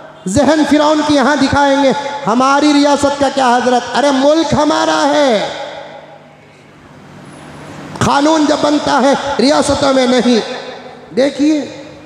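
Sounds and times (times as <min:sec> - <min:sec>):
voice echo: 0:00.0 - 0:06.4, 0:07.8 - 0:12.0
low background hum: 0:00.0 - 0:12.0.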